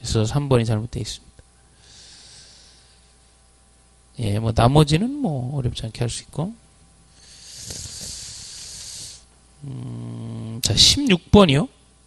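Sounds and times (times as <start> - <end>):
breathy hiss into microphone: 1.7 - 3.2, 7.1 - 10.5.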